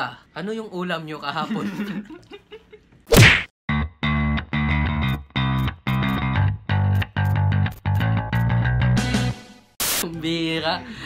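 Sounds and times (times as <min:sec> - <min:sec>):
guitar and bass jingle: 0:03.7 - 0:09.6.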